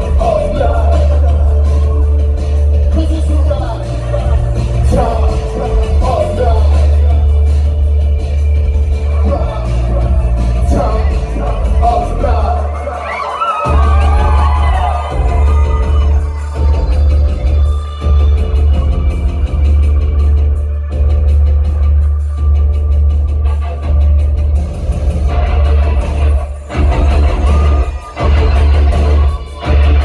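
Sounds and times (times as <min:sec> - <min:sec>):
heavy bass: 0:00.0 - 0:30.0
live rock band: 0:00.0 - 0:30.0.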